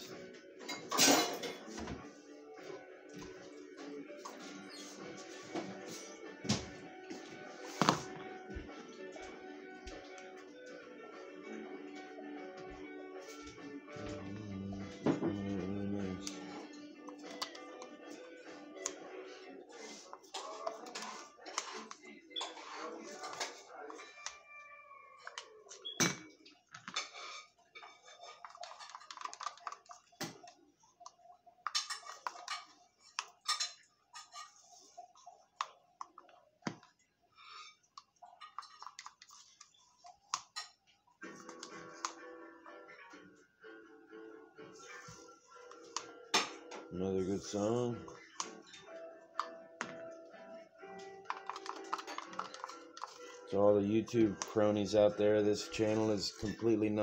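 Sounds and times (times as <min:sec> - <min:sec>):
song playing in room: 0:00.0 - 0:26.6, 0:41.1 - 0:57.0
plastic cups clicking and knocking: 0:28.0 - 0:33.7, 0:37.9 - 0:40.6, 0:51.2 - 0:54.6.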